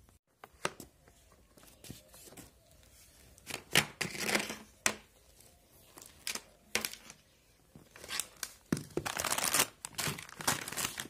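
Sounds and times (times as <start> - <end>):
plastic packet crinkling: 8.0 - 11.0.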